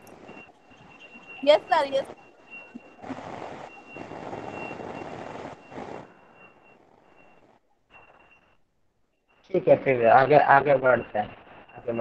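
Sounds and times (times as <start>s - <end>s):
thin high steady tone: 0.0s - 3.0s
noisy microphone rush: 0.0s - 8.5s.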